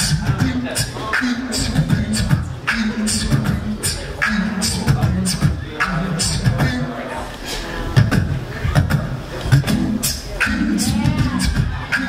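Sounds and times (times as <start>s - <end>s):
beatboxed rhythm: 0.0s - 12.0s.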